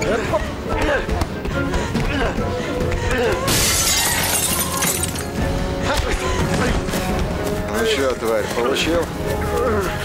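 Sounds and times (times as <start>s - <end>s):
window glass shattering: 3.5s - 5.4s.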